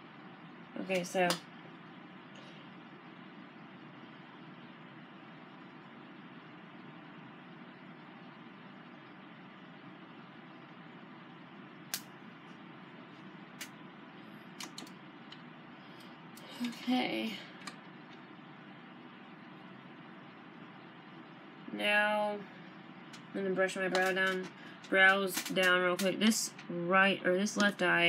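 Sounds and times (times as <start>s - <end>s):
room hum: 0.0s - 28.0s
sharp little clicks: 14.6s - 15.4s, 23.9s - 26.7s.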